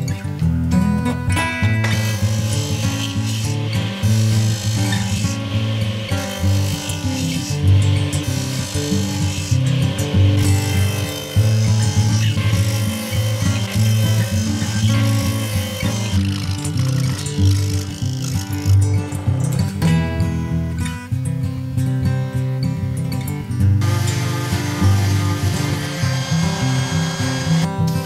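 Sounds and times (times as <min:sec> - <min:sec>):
background music: 0:00.0 - 0:20.8, 0:23.2 - 0:28.0
power saw cutting wood: 0:01.8 - 0:19.6, 0:23.8 - 0:28.0.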